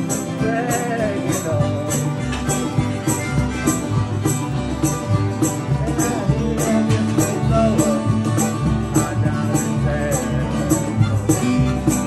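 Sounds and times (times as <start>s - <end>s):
banjo: 0.0s - 12.0s
sliding notes: 0.0s - 12.0s
strummed acoustic guitar: 0.0s - 12.0s
upright bass: 0.0s - 12.0s.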